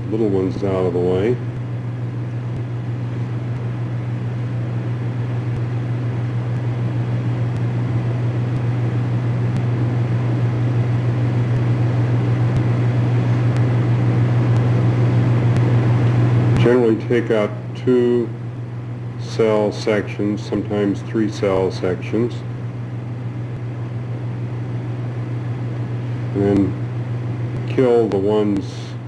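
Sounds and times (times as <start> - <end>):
steady low hum with hiss: 0.0 - 29.0.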